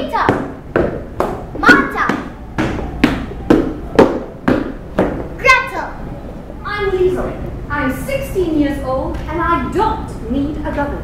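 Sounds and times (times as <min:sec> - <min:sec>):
sharp percussive beats: 0:00.1 - 0:05.4.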